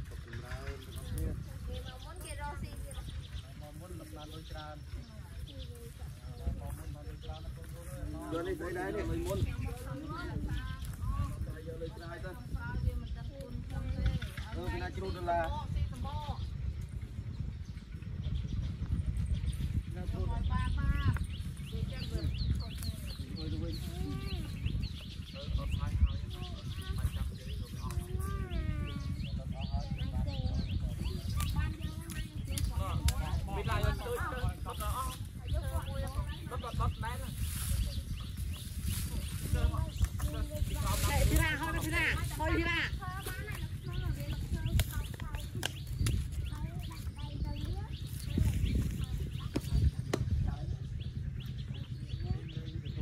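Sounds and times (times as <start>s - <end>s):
people talking: 0.0s - 17.0s, 18.1s - 53.0s
bird chirping: 0.0s - 53.0s
wind rumble on microphone: 0.0s - 53.0s.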